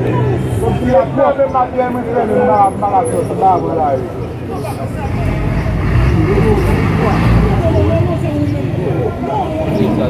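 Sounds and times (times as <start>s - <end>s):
people talking: 0.0s - 10.0s
heavy vehicle engine running: 4.0s - 10.0s.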